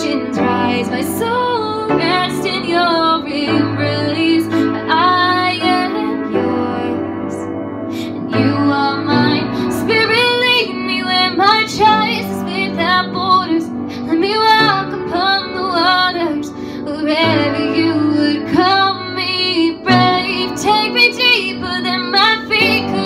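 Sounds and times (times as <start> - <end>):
woman singing: 0.0 - 23.0.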